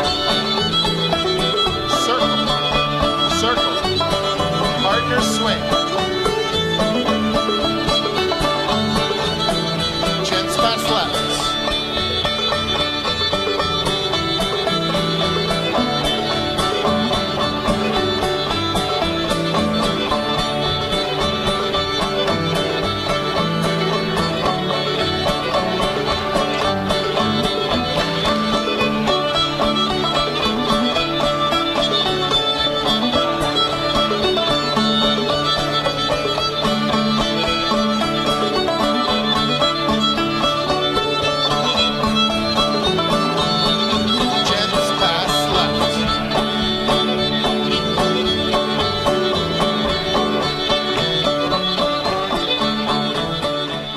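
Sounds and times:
banjo: 0:00.0 - 0:53.9
fiddle playing: 0:00.0 - 0:53.9
guitar: 0:00.0 - 0:53.9.

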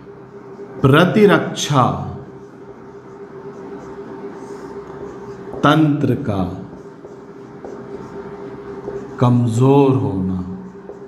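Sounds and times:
fan-like background hum: 0:00.0 - 0:11.0
marker pen writing on whiteboard: 0:02.3 - 0:11.0.

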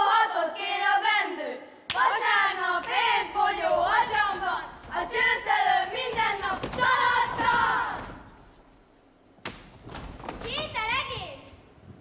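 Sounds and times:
children chanting a rhyme: 0:00.0 - 0:08.2.

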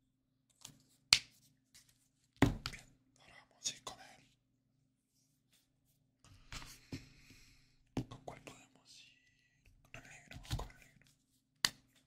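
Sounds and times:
soft breathy whispering: 0:02.8 - 0:04.4, 0:06.8 - 0:11.2.

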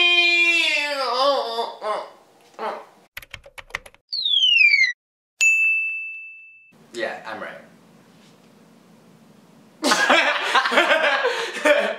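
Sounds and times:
whistle sliding down in pitch: 0:04.1 - 0:05.0
bell-like ding: 0:05.4 - 0:06.8.

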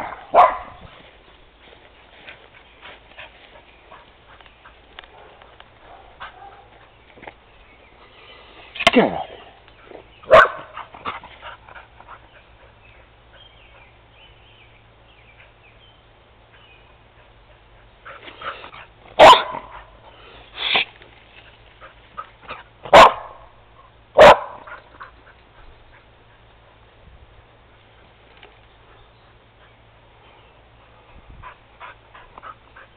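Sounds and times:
dog barking: 0:00.0 - 0:00.8, 0:05.1 - 0:06.7, 0:10.3 - 0:10.8, 0:19.2 - 0:19.9, 0:22.9 - 0:23.5, 0:24.2 - 0:24.7.

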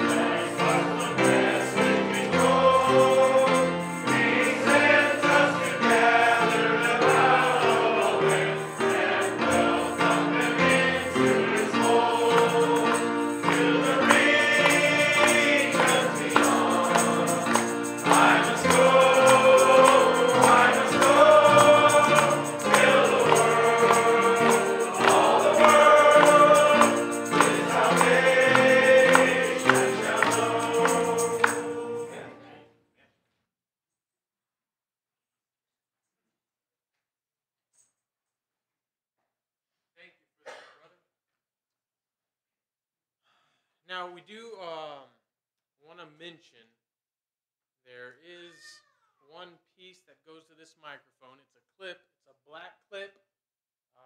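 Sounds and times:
congregation singing a hymn: 0:00.0 - 0:32.7.

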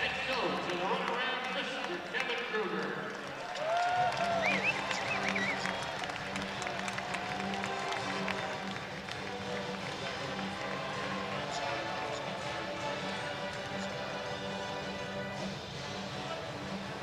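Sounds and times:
crowd applause: 0:00.0 - 0:15.2
music over sound system: 0:03.9 - 0:17.0.

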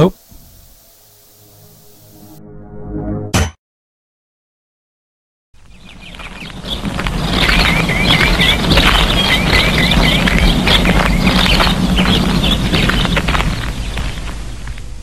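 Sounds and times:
birds chirping: 0:05.6 - 0:15.0
low hum: 0:05.8 - 0:15.0.

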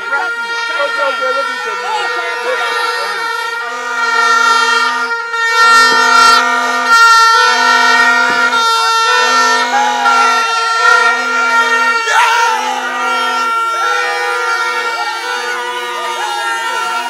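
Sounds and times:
lower horn blasts: 0:00.0 - 0:17.0
plastic horns continuous blare: 0:00.0 - 0:17.0.

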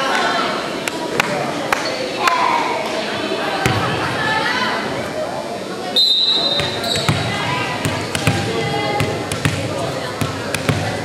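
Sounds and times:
referee's whistle: 0:06.0 - 0:07.2
volleyball bouncing on wooden floor: 0:06.6 - 0:11.0.

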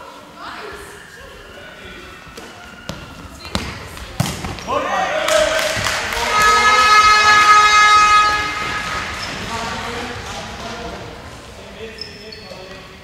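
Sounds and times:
voices of people: 0:00.0 - 0:13.0
horn steady tone: 0:06.1 - 0:09.4.

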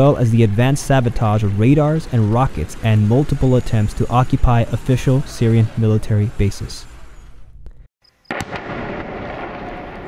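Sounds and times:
sharp bangs: 0:08.2 - 0:10.0.

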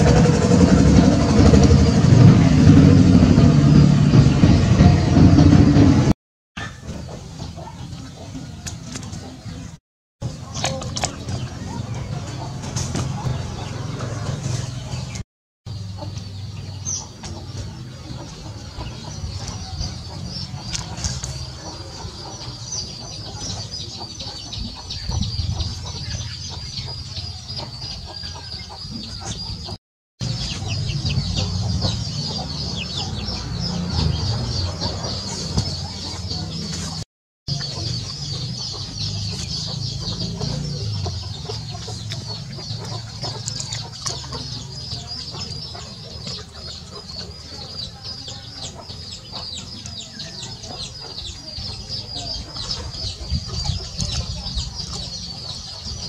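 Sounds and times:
chickens clucking: 0:06.6 - 0:56.0.

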